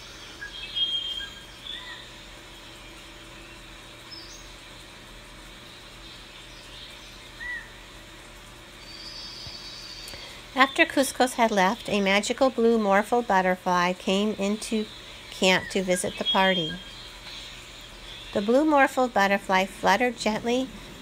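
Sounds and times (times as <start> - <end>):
faint bird chirps: 0.0 - 4.9, 5.5 - 8.0, 8.8 - 12.2, 14.1 - 19.2
low background hiss: 0.0 - 21.0.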